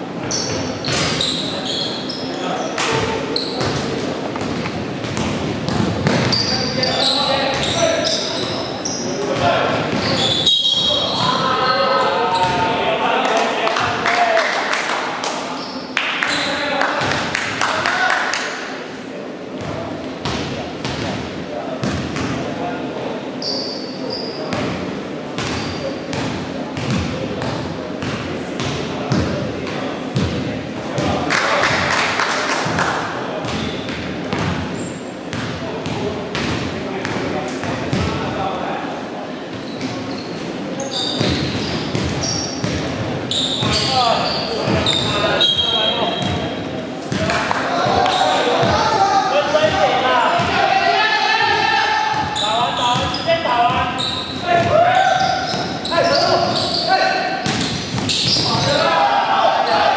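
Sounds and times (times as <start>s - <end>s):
sneaker squeaks: 0.2s - 12.8s, 15.5s - 17.2s, 23.3s - 24.8s, 25.4s - 29.4s, 33.4s - 35.5s, 39.5s - 47.2s, 47.8s - 48.8s, 52.1s - 58.9s, 59.6s - 59.9s
players calling out: 43.3s - 59.9s.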